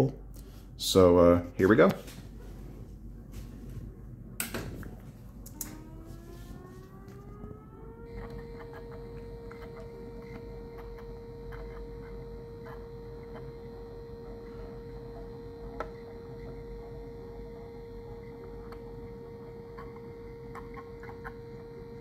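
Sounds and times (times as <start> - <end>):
siren whine rising: 5.2 - 22.0.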